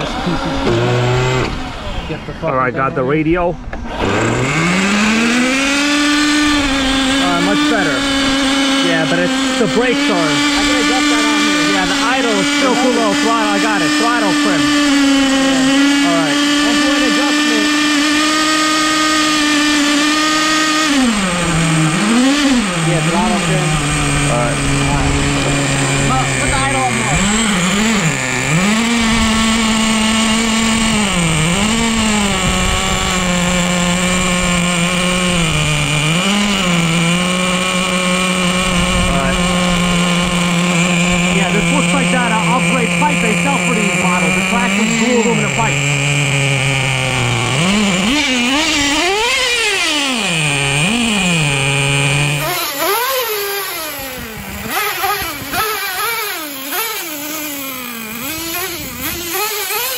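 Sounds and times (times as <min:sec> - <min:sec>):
nitro engine revving: 0:00.0 - 0:59.9.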